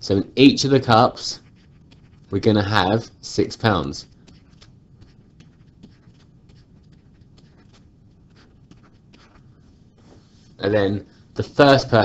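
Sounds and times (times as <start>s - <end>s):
stylus scratching on tablet: 0.1s - 12.0s.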